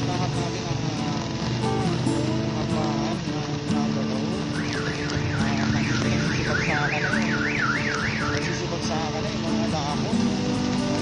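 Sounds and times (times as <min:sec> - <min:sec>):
electronic alarm warbling: 0:04.5 - 0:08.6.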